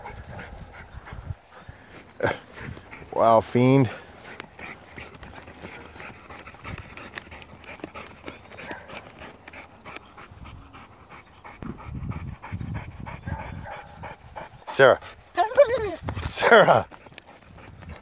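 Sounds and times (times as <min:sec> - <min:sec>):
dog panting and sniffing: 0:00.0 - 0:18.0.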